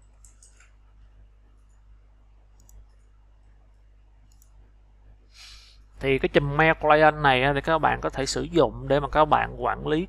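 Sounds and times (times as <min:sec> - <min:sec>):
low steady hum: 0:00.0 - 0:10.0
faint computer mouse clicks: 0:00.2 - 0:00.8, 0:02.6 - 0:03.1, 0:04.3 - 0:04.6.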